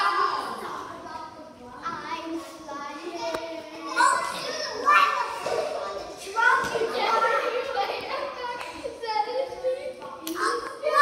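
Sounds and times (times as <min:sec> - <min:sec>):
children calling out: 0:00.0 - 0:01.0, 0:03.6 - 0:11.0.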